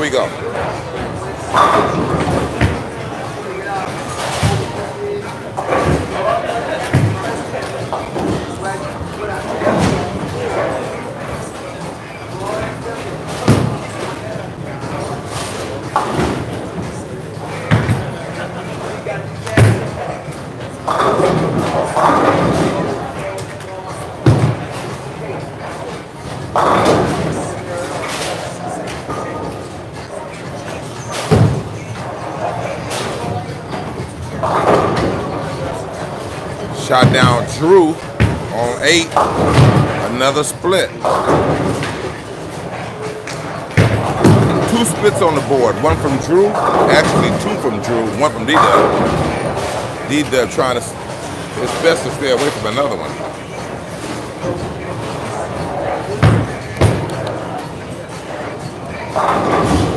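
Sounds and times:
chatter of people: 0.0s - 59.9s
bowling balls crashing into pins: 43.4s - 45.1s.

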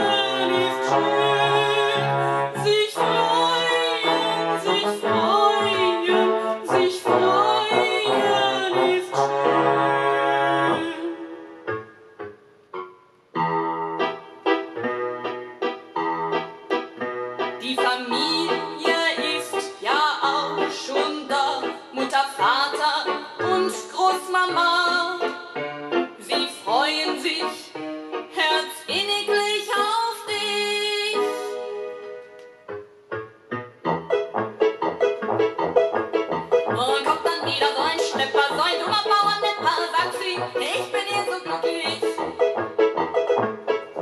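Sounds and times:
person singing: 0.0s - 11.5s, 17.6s - 25.5s, 26.2s - 27.8s, 36.7s - 42.5s
piano accompaniment: 0.0s - 44.0s.

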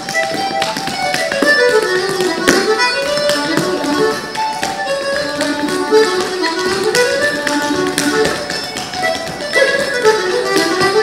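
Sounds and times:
dance shoes tapping wooden floor: 0.0s - 11.0s
fiddle playing dance music: 0.0s - 11.0s.

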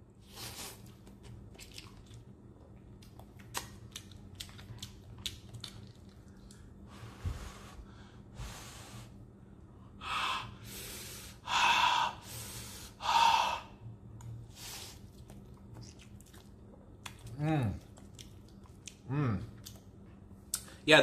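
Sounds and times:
chewing noodles: 0.6s - 6.8s, 14.2s - 20.0s
wet mouth clicks: 3.0s - 6.6s.

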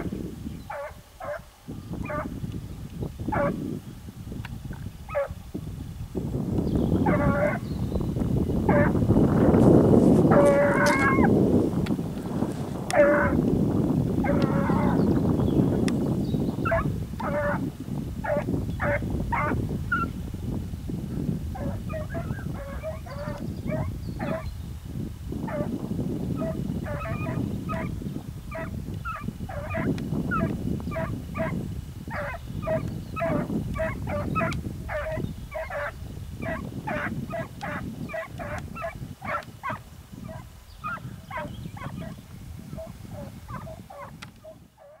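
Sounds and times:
hounds baying in the distance: 0.7s - 2.4s, 3.3s - 3.6s, 5.1s - 5.4s, 7.0s - 7.8s, 8.6s - 9.6s, 10.2s - 11.4s, 12.7s - 13.4s, 14.1s - 15.8s, 16.5s - 20.2s, 21.5s - 24.5s, 25.4s - 45.0s.

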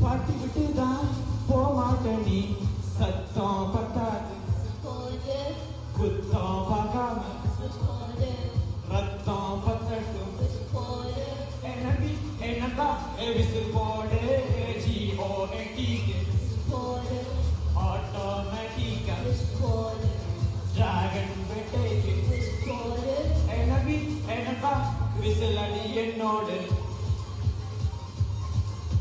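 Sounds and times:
man singing into microphone: 0.0s - 5.1s, 5.9s - 26.8s
karaoke backing track: 0.0s - 29.0s.

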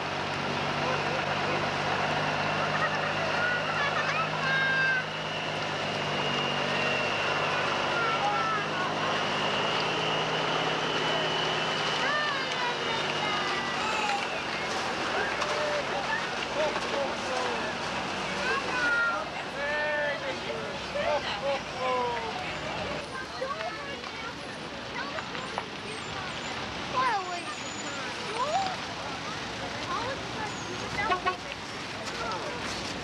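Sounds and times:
diesel truck engine running: 0.0s - 33.0s
people's voices and calls: 0.0s - 33.0s.

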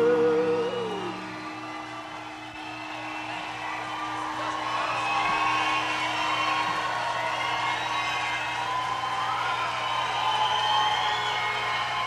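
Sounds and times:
faint audience noise: 0.0s - 12.0s.

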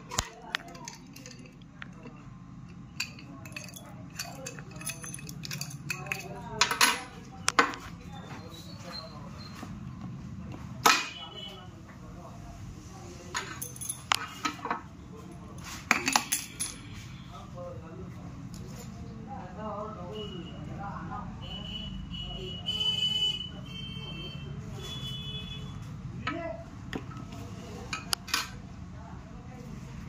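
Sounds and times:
padlock clinking on marble: 0.1s - 7.1s.

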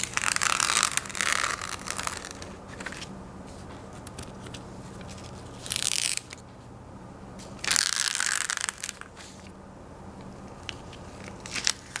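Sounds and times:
tape peeling off paper: 0.0s - 3.1s, 4.0s - 6.4s, 7.6s - 9.4s, 10.6s - 12.0s
paper crinkling: 10.6s - 12.0s.

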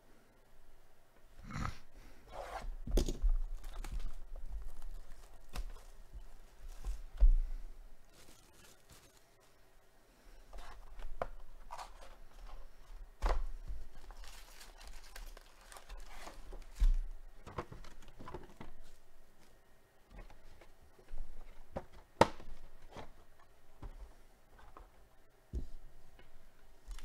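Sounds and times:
foil wrappers rustling and crinkling: 3.3s - 7.2s, 8.1s - 9.5s, 13.7s - 19.0s.

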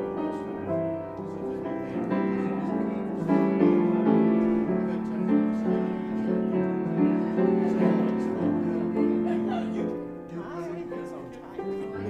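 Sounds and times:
piano chords and melody: 0.0s - 12.0s.

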